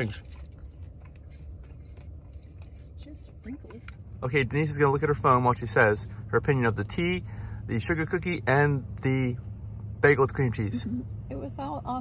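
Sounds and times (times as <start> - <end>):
person chewing cookie: 0.0 - 4.1
low car interior rumble: 0.0 - 12.0.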